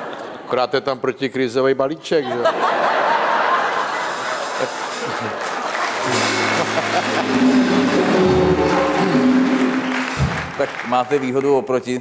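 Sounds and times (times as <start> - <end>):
audience applauding: 3.6 - 11.8
band playing instrumental piece: 5.8 - 11.0.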